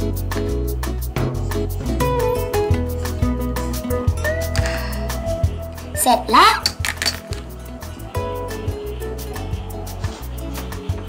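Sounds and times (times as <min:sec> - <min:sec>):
background music with bass: 0:00.0 - 0:11.0
girl exclaiming: 0:06.0 - 0:06.8.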